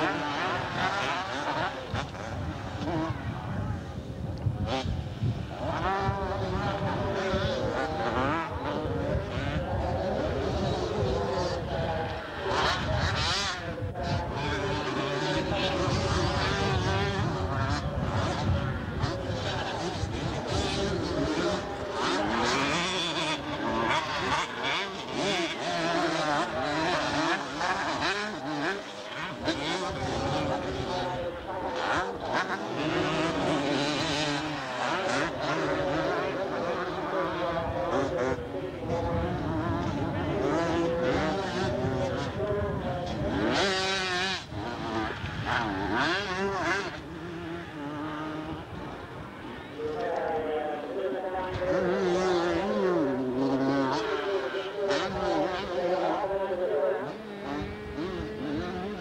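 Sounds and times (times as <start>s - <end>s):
motocross bike engines revving: 0.0s - 59.0s.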